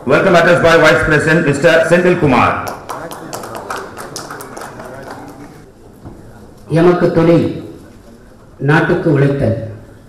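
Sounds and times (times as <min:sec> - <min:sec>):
scattered handclapping: 0:02.6 - 0:05.7.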